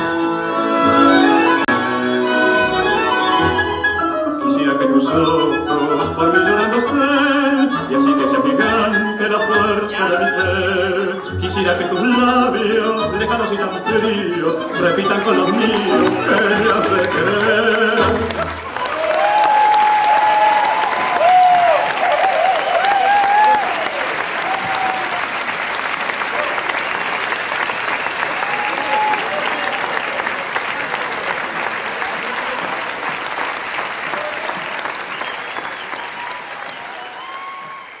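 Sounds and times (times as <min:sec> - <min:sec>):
audience applauding: 0:14.7 - 0:38.0
people cheering: 0:15.5 - 0:38.0.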